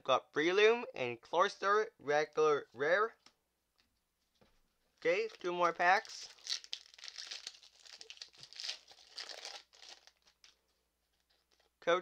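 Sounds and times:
foil wrapper crinkling: 5.0 - 11.7.

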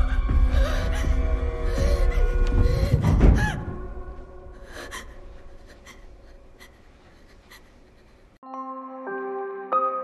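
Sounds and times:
dark film score low tones: 0.0 - 6.8.

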